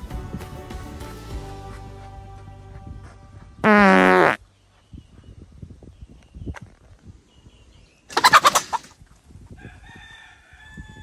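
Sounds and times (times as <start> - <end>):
background music: 0.0 - 3.7
fart sound: 3.6 - 4.4.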